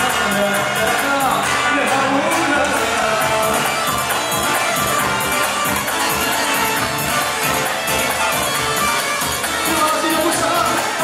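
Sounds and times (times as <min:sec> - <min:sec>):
crowd noise: 0:00.0 - 0:11.0
live band dance music: 0:00.0 - 0:11.0.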